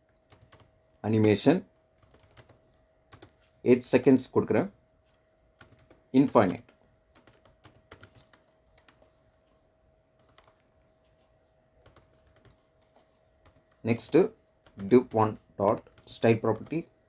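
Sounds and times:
computer keyboard typing: 0.0s - 3.5s, 5.5s - 9.5s, 10.2s - 11.2s, 11.8s - 17.0s
person speaking: 1.0s - 1.7s, 6.1s - 6.8s, 12.1s - 17.0s.

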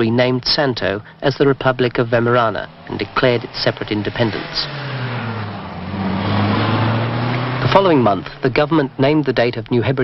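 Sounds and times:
road and wind noise: 0.0s - 10.0s
truck engine droning: 0.0s - 10.0s.

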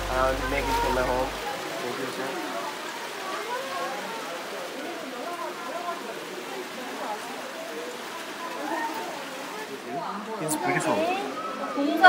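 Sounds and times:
people chattering: 0.0s - 12.0s
waterfall rushing: 0.0s - 12.0s.

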